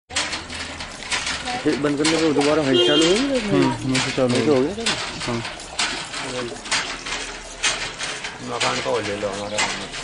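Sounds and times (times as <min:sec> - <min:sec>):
hand pump being worked: 0:00.1 - 0:10.0
water gushing out: 0:00.4 - 0:10.0.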